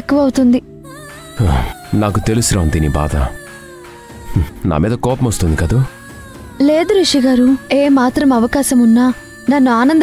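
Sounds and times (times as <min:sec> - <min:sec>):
soft sustained music: 0:00.0 - 0:10.0.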